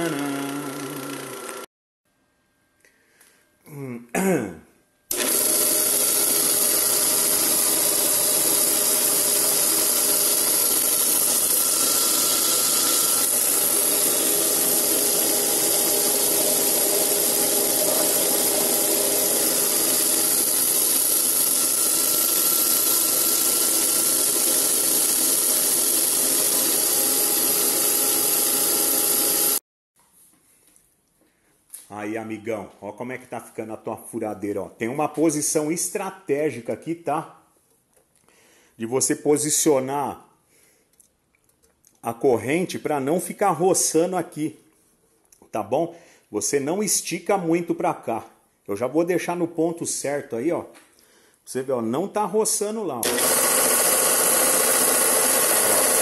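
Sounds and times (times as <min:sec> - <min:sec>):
drill press motor hum: 0:00.0 - 0:01.7, 0:05.1 - 0:29.6, 0:53.0 - 0:56.0.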